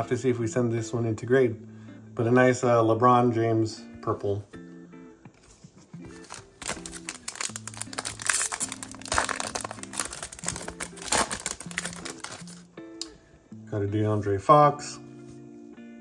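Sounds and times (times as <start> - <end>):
background music: 0.0 - 16.0
wrapper crinkling and tearing: 6.2 - 12.7.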